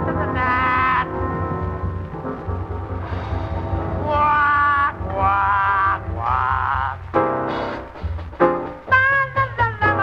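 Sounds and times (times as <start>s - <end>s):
muffled swing jazz recording: 0.0s - 10.0s.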